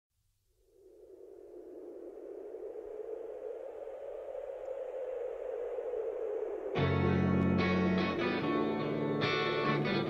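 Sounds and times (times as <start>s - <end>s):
hazy noise pad: 0.2s - 10.0s.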